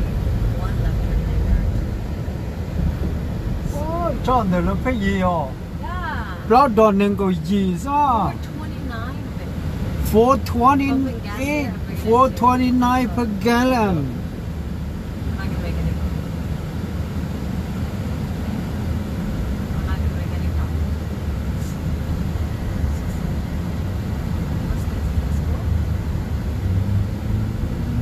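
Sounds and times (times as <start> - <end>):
car engine rumble: 0.0 - 28.0.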